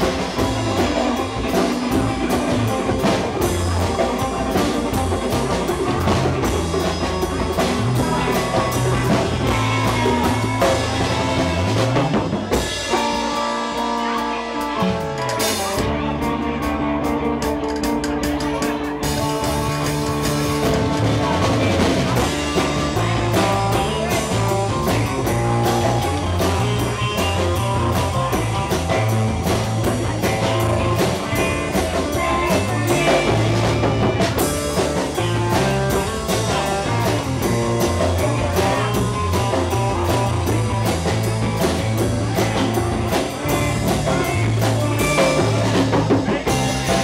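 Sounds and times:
live surf rock band: 0.0 - 47.0.

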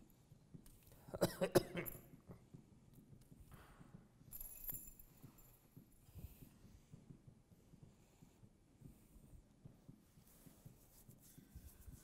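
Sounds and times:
person coughing: 1.1 - 2.0.

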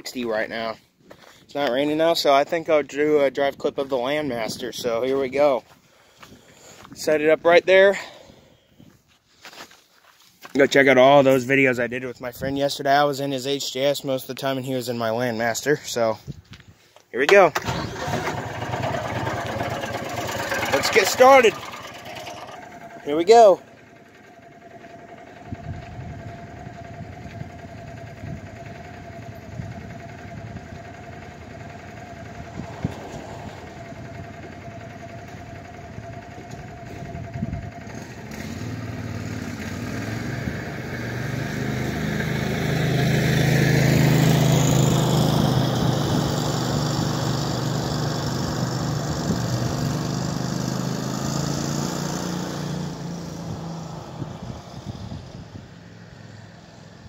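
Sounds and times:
utility vehicle engine: 17.4 - 57.0.

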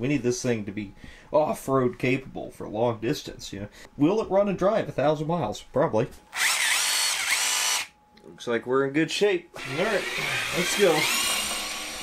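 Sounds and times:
electric motor whirring whine: 6.3 - 8.0, 9.6 - 12.0.

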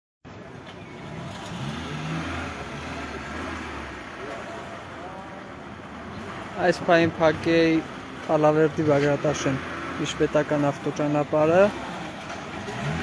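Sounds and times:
street noise: 0.2 - 13.0.

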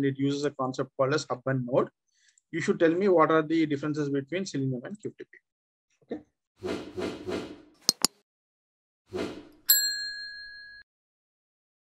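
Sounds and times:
bell ding: 9.7 - 10.9.

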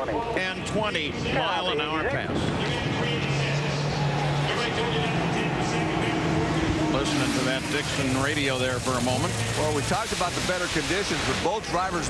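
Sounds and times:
radio voice: 0.0 - 11.5
steady hum and noise: 0.0 - 12.0.

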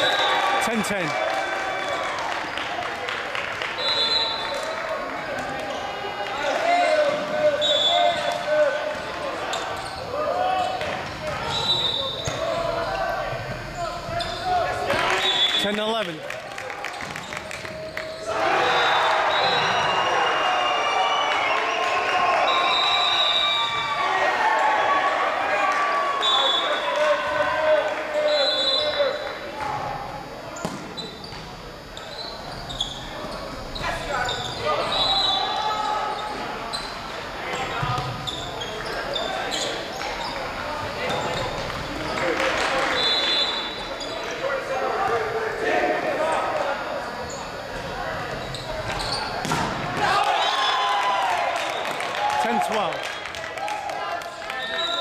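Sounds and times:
players shouting: 17.7 - 29.9, 49.0 - 52.9
shoes squeaking on hardwood court: 48.3 - 49.6
volleyball thudding: 49.4 - 50.2.

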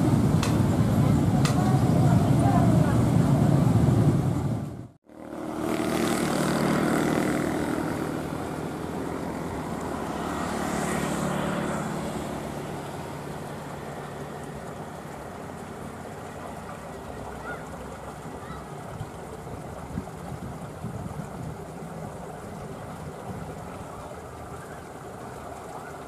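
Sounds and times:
distant locomotive engine drone: 0.0 - 26.0
voices: 0.4 - 3.8, 11.2 - 19.5.

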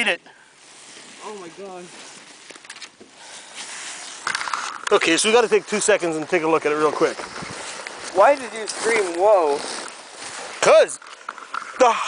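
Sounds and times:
jacket rustling: 0.6 - 11.2.

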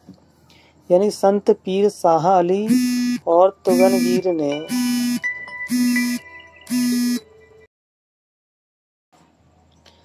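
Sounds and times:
buzzy electronic tone: 2.7 - 7.2.

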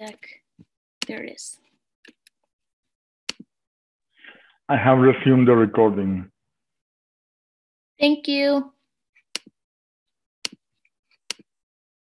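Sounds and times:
computer mouse clicks: 10.5 - 11.5.

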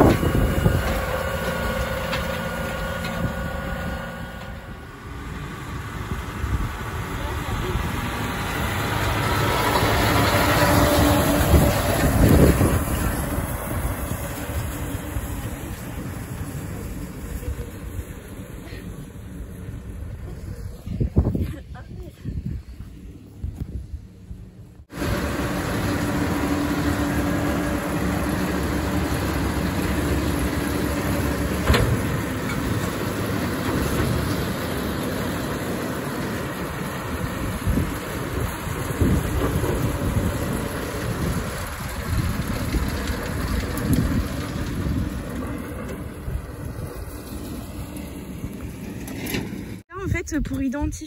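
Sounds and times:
tractor and baler running: 0.0 - 51.0.

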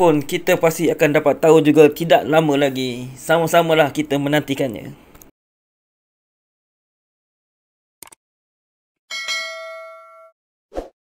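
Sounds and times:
notification bell ding: 9.1 - 10.4.

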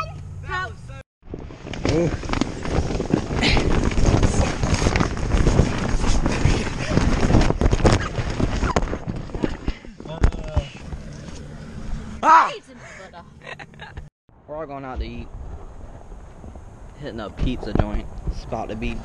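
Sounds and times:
inflatable ball tumbling: 1.2 - 11.3
plastic shell crumpling and knocking: 1.5 - 11.1.

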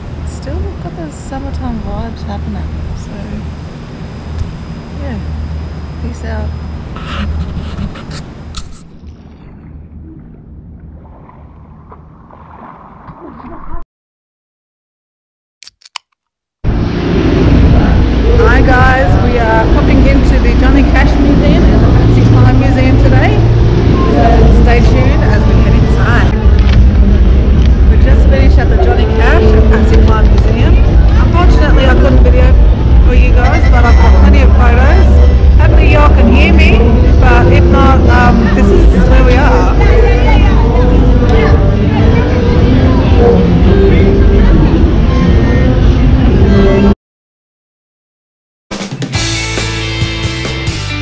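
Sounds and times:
woman talking: 0.3 - 3.5, 5.0 - 5.4, 6.0 - 6.6, 18.2 - 26.4, 27.9 - 45.4
swimmer splashing water: 8.7 - 13.8
wind rumbling on microphone: 16.7 - 47.0.

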